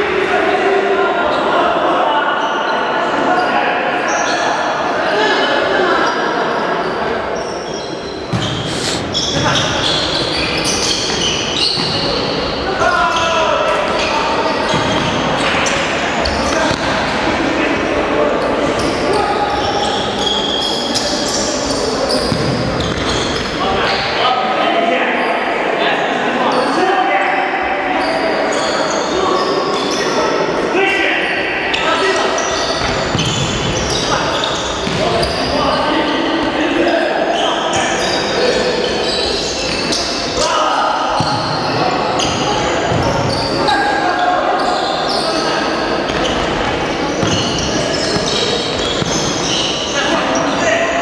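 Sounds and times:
players calling out: 7.4 - 13.3.

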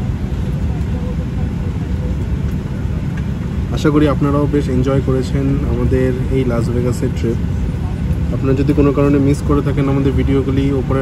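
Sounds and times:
airliner engine rumble: 0.0 - 11.0.

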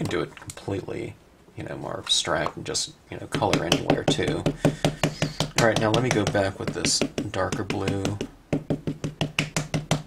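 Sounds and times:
ink pad tapping rubber stamp: 3.3 - 10.0.

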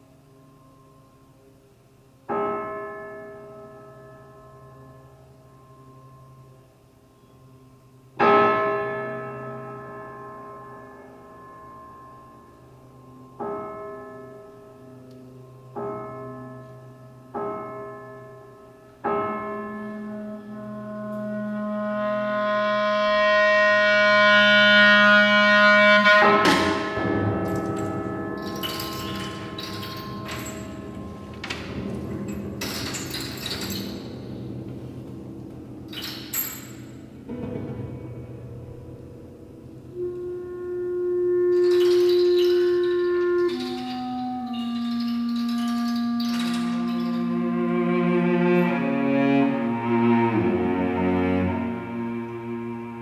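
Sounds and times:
held clarinet tone: 19.9 - 31.9, 39.9 - 53.0
struck prepared piano: 25.9 - 40.4
low sustained cello note: 37.4 - 42.0, 47.2 - 53.0.

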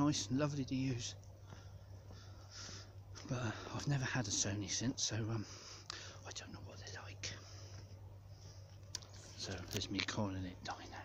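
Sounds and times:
steady low hum: 0.0 - 11.0
man muttering and whispering: 6.1 - 7.8, 9.2 - 11.0.

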